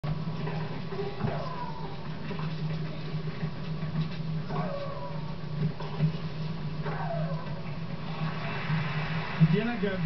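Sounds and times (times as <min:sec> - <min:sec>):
steady low hum: 0:00.0 - 0:10.0
dog whining: 0:00.9 - 0:02.4, 0:04.4 - 0:05.7, 0:06.8 - 0:08.3.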